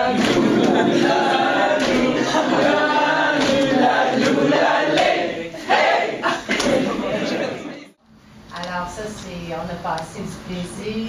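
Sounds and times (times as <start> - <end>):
group chanting: 0.0 - 8.0.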